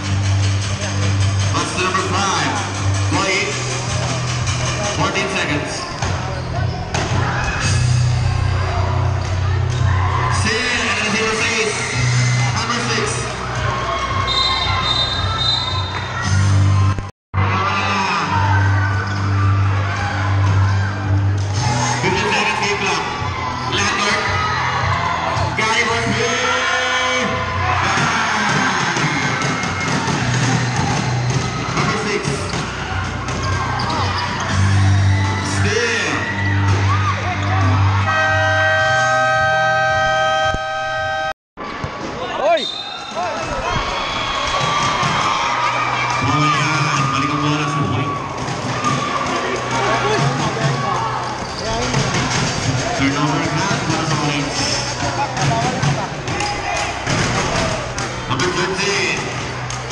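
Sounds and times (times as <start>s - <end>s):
background music: 0.0s - 41.3s, 44.0s - 59.9s
crowd voices cheering: 0.0s - 59.9s
steady horn: 37.7s - 41.4s
shoes squeaking on floor: 51.3s - 52.2s.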